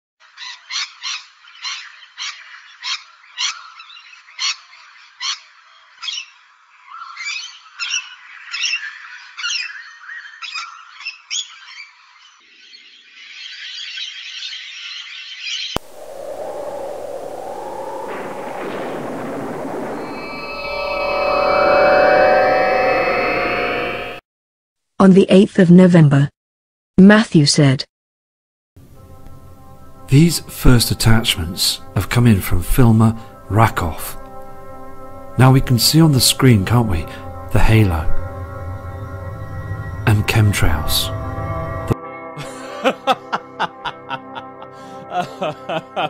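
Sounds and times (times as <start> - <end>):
synthesized logo sting: 15.8 - 24.2, 33.2 - 42.0.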